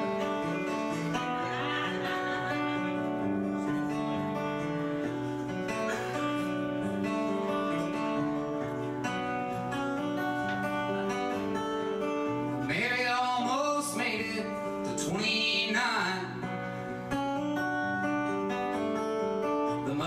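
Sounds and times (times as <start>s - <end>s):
person singing: 0.0s - 4.8s, 10.0s - 16.6s, 19.7s - 20.0s
acoustic guitar strumming: 0.0s - 20.0s.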